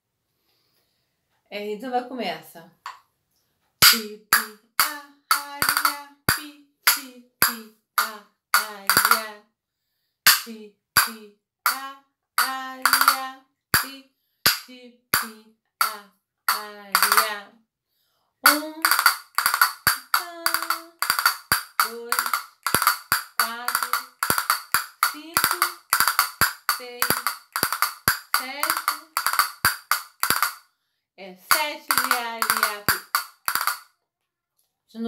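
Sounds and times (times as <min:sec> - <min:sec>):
castanets clicking and rolling: 0:18.5 - 0:30.6, 0:31.5 - 0:33.9.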